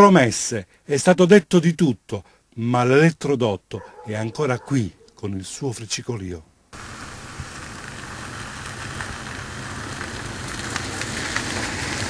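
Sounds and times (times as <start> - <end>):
power line sizzling and crackling: 6.7 - 12.0.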